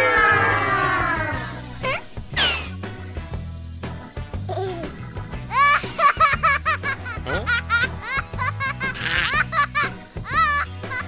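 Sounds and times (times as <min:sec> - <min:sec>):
background music with bass: 0:00.0 - 0:11.0.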